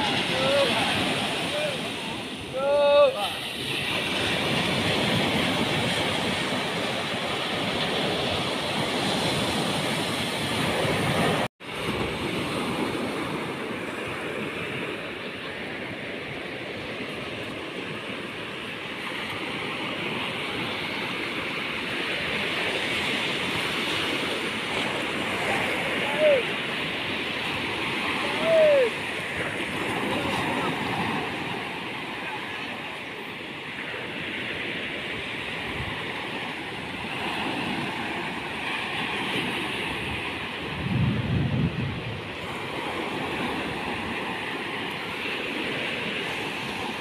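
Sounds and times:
small waves breaking on sand: 0.0s - 47.0s.

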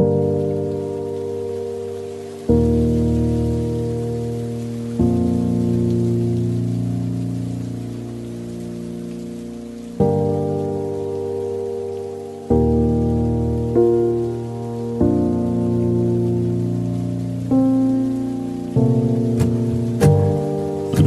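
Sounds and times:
reverb-heavy piano chords: 0.0s - 21.0s
steady hiss: 0.0s - 21.0s.

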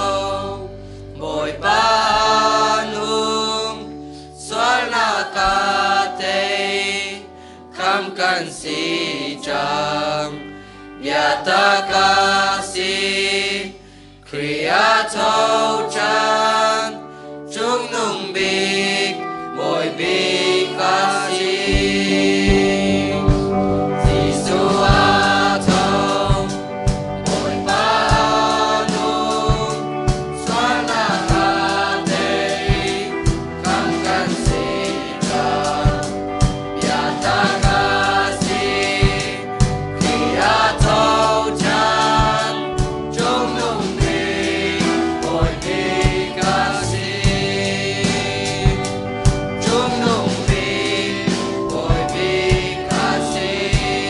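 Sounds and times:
choir singing a hymn: 0.0s - 54.0s
guitar: 0.0s - 54.0s
steady beat: 21.6s - 54.0s.

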